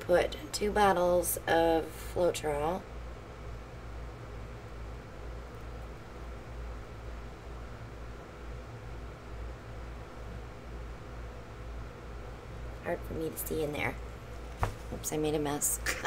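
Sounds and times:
room hum and hiss: 0:00.0 - 0:16.0.

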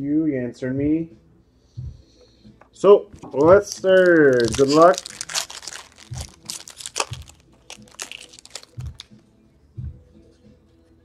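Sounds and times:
foil wrapper tearing and crinkling: 0:03.6 - 0:09.1.

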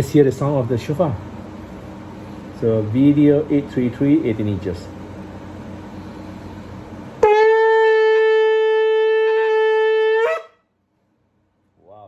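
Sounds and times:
shofar long blast: 0:07.2 - 0:10.7.

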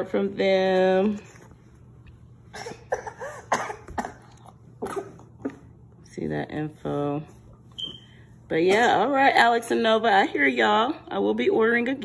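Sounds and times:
person coughing: 0:02.5 - 0:05.6.

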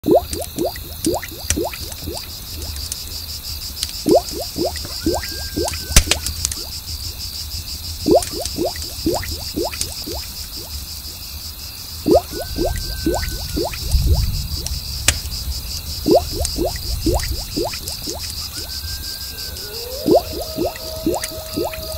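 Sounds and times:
bubble plops sliding in pitch: 0:00.0 - 0:02.8, 0:04.1 - 0:06.7, 0:08.0 - 0:10.7, 0:12.1 - 0:14.7, 0:16.1 - 0:18.7, 0:20.0 - 0:21.9
cricket chorus: 0:00.0 - 0:21.9.

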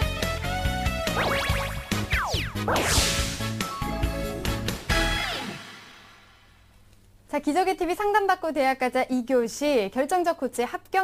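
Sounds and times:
loud swish: 0:01.1 - 0:03.9
falling pitch sweeps: 0:01.1 - 0:04.0
rising sweep: 0:01.1 - 0:04.8.

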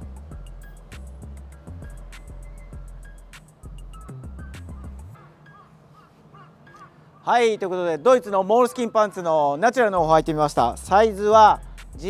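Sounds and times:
low outdoor background noise: 0:00.0 - 0:12.0
faint short bird calls: 0:04.0 - 0:07.4.

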